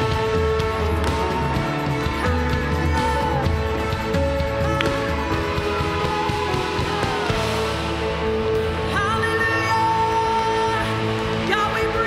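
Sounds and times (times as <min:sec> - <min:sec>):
worship band playing live: 0:00.0 - 0:12.0.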